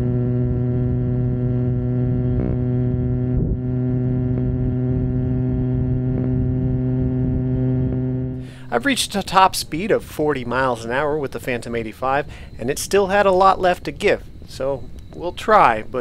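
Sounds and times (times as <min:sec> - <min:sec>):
two-stroke engine droning: 0:00.0 - 0:16.0.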